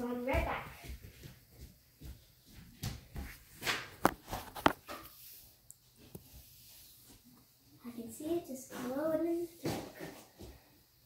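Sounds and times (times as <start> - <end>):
footsteps on a wooden floor: 0.0 - 5.1.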